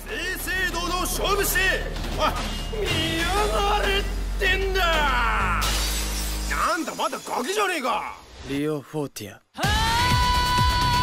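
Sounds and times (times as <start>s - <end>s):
shattering crash effect: 5.6s - 7.6s.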